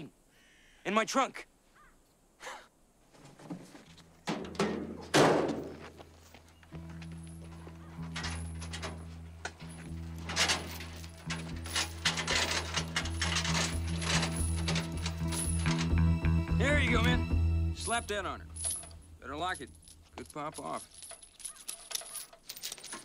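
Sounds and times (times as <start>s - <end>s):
heavy thuds: 3.2s - 6.2s
film score music: 6.5s - 20.0s
metal chain clinking: 6.9s - 16.1s, 17.8s - 23.0s.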